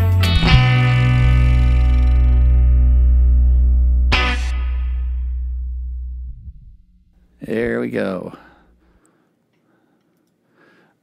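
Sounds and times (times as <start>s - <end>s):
electric guitar chord ringing: 0.0s - 7.2s
deep bass note: 0.0s - 7.8s.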